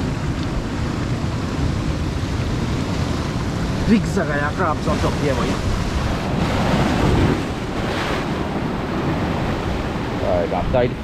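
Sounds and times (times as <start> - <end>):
ocean surf breaking over rocks: 0.0 - 11.0.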